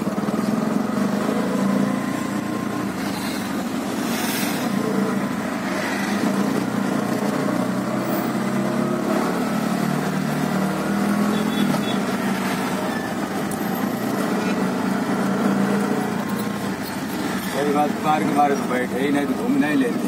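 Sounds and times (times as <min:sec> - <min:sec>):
auto rickshaw engine running: 0:00.0 - 0:20.0.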